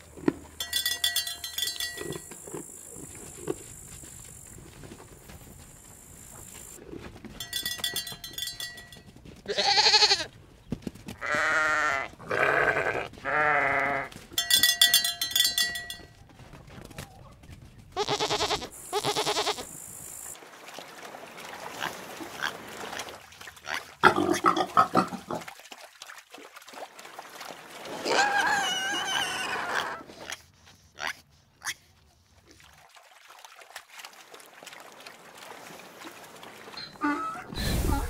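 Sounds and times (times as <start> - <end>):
sheep bleating: 9.5 - 10.3, 11.2 - 14.2, 18.0 - 19.7.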